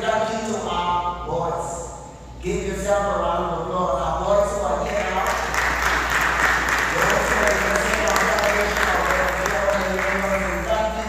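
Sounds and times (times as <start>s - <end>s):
man speaking: 0.0s - 5.6s, 6.8s - 11.0s
congregation clapping: 4.9s - 11.0s.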